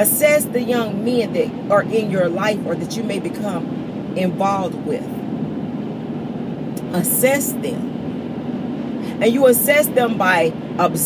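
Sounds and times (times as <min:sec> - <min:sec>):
car engine hum in cabin: 0:00.0 - 0:11.0.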